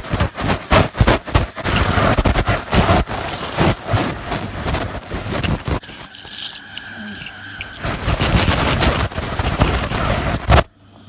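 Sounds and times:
high-pitched dental scaler whine: 0.0s - 10.7s.

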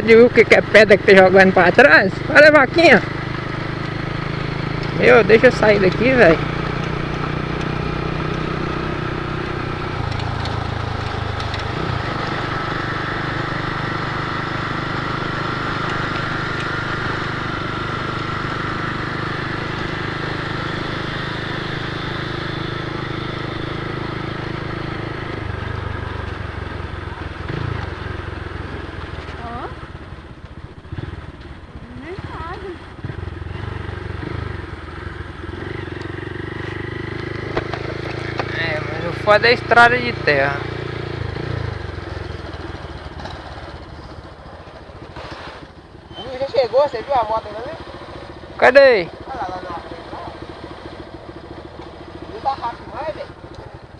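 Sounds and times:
motorcycle engine running: 0.0s - 53.9s
road and wind noise: 0.0s - 53.9s.

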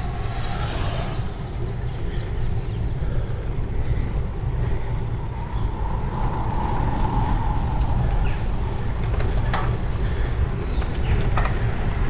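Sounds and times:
faint whir: 0.0s - 11.8s
wind rushing over microphone: 0.0s - 12.0s.

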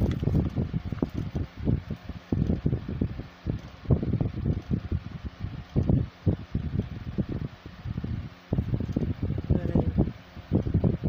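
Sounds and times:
fan air buffeting microphone: 0.0s - 11.0s.

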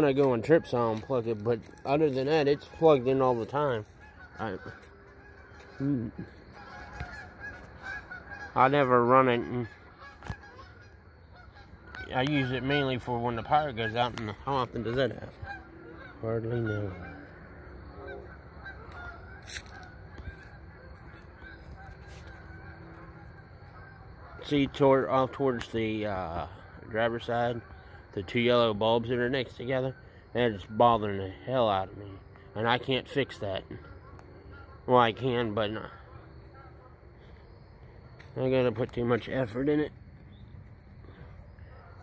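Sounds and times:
geese honking: 0.0s - 42.0s
low outdoor hum: 0.0s - 42.0s.

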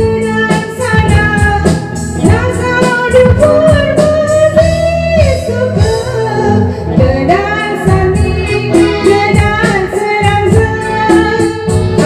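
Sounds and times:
instrumental backing music: 0.0s - 12.0s
woman singing gospel: 0.0s - 12.0s.

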